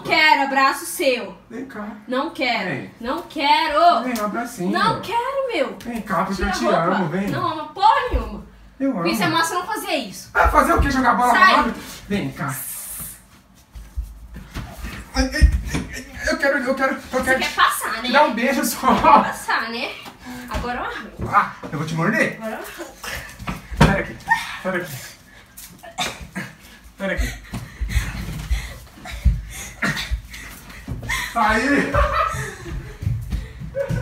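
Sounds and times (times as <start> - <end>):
soft thumps of bodies and feet: 10.4 - 11.4, 13.5 - 16.4, 23.2 - 24.3, 27.1 - 34.0
people scuffling: 10.4 - 34.0.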